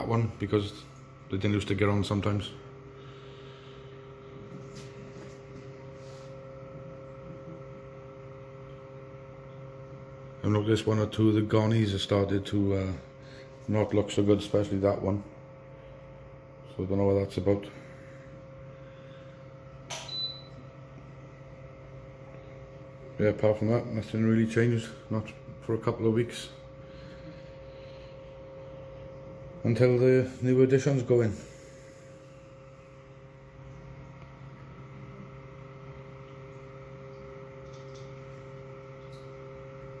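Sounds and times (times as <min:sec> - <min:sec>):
aquarium pump humming: 0:00.0 - 0:40.0.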